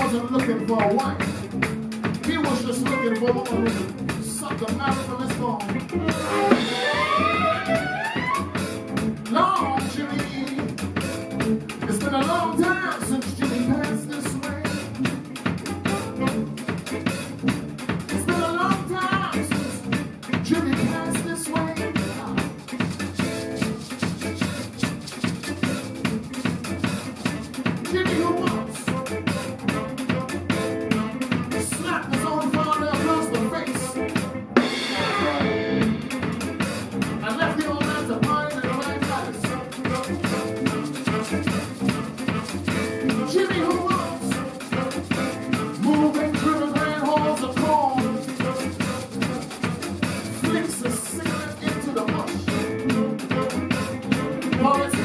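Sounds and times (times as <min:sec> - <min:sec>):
drum kit beat: 0:00.0 - 0:55.0
live band music: 0:00.0 - 0:55.0.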